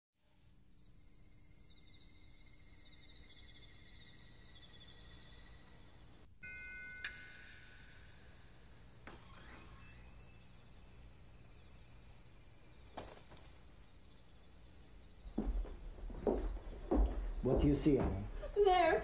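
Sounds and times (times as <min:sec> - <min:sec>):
faint warbling high tones: 0:00.8 - 0:15.0
sharp bell-like ding: 0:06.4 - 0:08.4.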